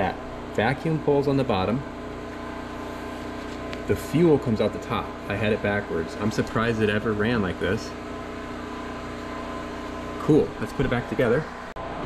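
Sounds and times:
machine humming with rapid ticking: 0:00.0 - 0:12.0.

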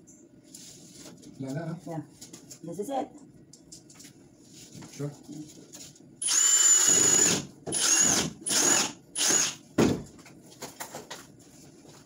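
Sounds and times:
power drill whining: 0:06.2 - 0:09.6.

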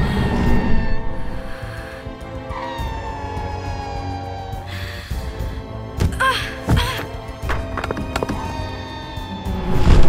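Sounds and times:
orchestral film score: 0:00.0 - 0:10.0.

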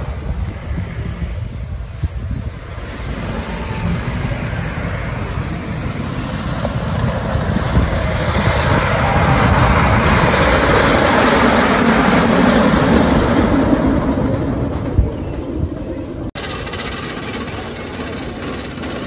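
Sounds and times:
roller coaster rumbling on wooden track: 0:00.0 - 0:19.0.

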